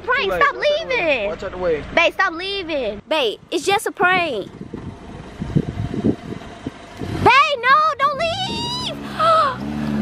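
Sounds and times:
car engine rumble: 0.0s - 10.0s.

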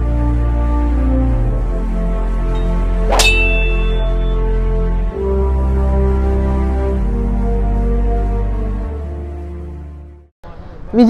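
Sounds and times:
metallic clang: 2.6s - 4.6s.

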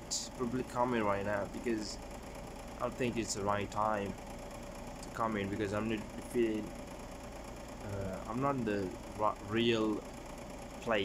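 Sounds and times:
low mechanical hum: 0.0s - 11.0s
man hesitating: 7.8s - 8.3s.

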